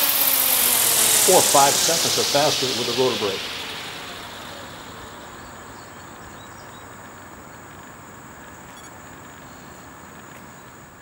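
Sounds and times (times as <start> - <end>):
thin high whine: 0.0 - 10.0
faint steady hiss: 0.0 - 11.0
helicopter rotor spinning down: 0.0 - 11.0.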